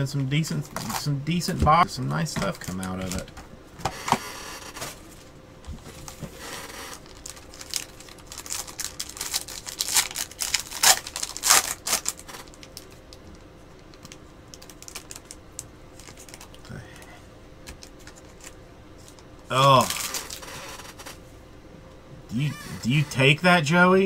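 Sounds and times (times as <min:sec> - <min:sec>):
faint steady hum: 0:00.0 - 0:24.0
foil wrapper tearing and crinkling: 0:06.0 - 0:16.7, 0:17.8 - 0:21.1.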